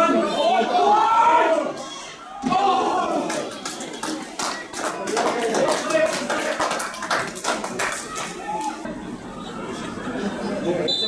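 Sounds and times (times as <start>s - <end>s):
faint shouting voices: 0.0s - 11.0s
hand claps: 3.3s - 8.8s.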